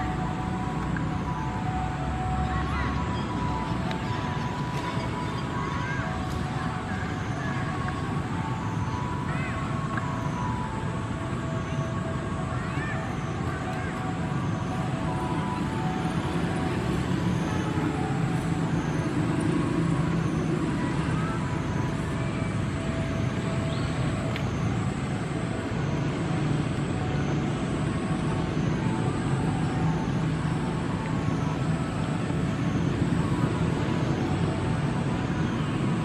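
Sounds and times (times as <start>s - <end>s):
outdoor background rumble: 0.0s - 36.0s
thin high continuous tone: 0.0s - 36.0s.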